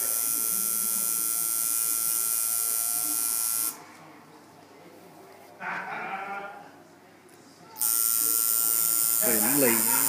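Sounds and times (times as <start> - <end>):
tattoo machine buzzing: 0.0 - 3.8, 7.8 - 10.0.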